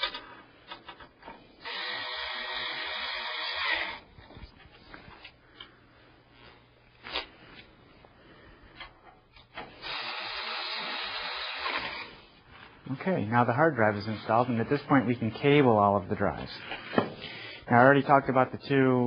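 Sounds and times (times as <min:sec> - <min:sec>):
powered screwdriver driving screws: 0:01.6 - 0:04.0, 0:09.8 - 0:12.1.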